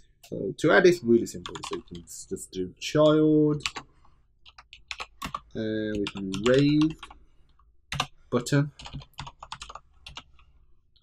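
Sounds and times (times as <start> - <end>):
computer keyboard typing: 1.4 - 2.0, 3.6 - 7.2, 7.9 - 8.1, 8.8 - 10.5.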